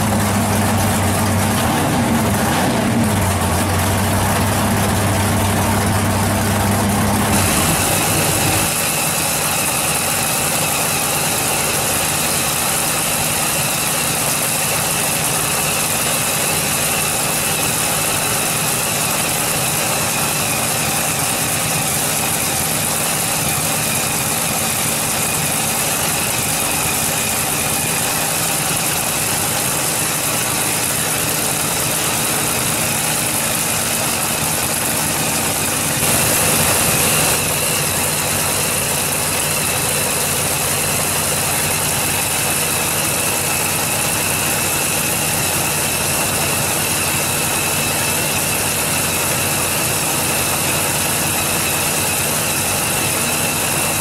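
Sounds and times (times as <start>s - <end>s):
drag-race engine idling: 0.0s - 54.0s.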